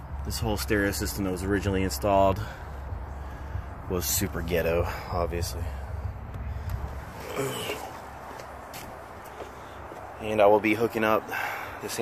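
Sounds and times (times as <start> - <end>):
steady low rumble: 0.0 - 11.8
footsteps on pavement: 2.8 - 10.4.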